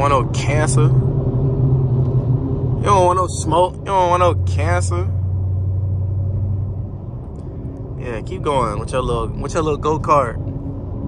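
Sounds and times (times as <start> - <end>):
car exhaust drone from cabin: 0.0 - 11.0.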